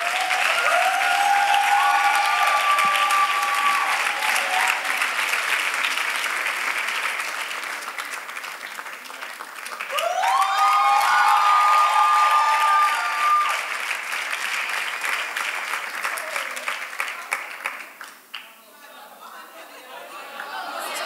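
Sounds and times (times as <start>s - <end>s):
crowd high cries: 0.0s - 5.1s, 9.9s - 13.7s
audience clapping: 0.0s - 18.6s.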